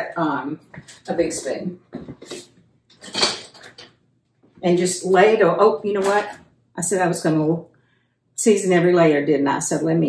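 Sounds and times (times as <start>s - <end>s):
metal kitchen utensils clinking: 3.0s - 3.8s, 4.9s - 6.4s.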